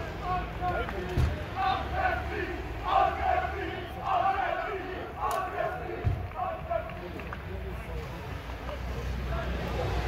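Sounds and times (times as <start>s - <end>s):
men chanting a cheer in unison: 0.0s - 7.3s, 9.2s - 10.0s.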